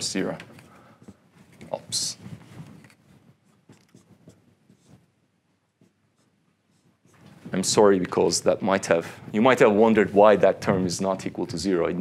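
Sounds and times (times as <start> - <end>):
marker writing on whiteboard: 0.6 - 7.6.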